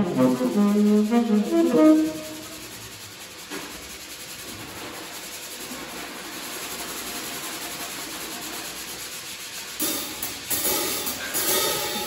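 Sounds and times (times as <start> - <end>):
improvised scraping trio: 0.0 - 3.1
loud drum hit: 9.8 - 12.0.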